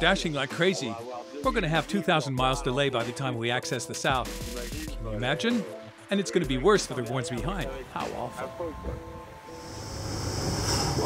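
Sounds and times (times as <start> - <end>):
music: 0.0 - 11.0
water and wind rushing: 7.8 - 11.0.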